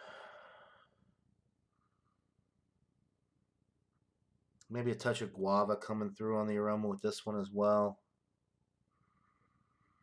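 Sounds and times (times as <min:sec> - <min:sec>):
man sighing: 0:00.0 - 0:00.8.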